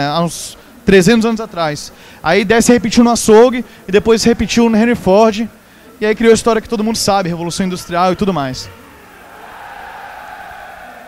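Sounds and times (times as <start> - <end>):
crowd murmur in a hall: 0.0 - 11.0.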